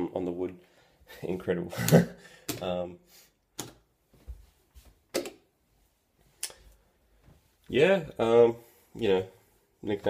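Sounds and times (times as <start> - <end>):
footsteps on wooden floor: 4.1 - 5.0.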